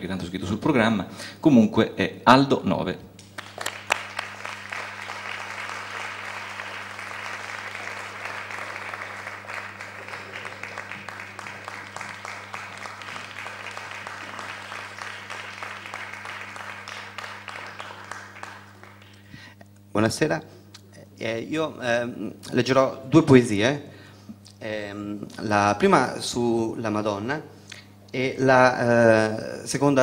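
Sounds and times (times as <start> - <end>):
low electrical hum: 0.0 - 30.0
audience applauding: 3.2 - 19.5.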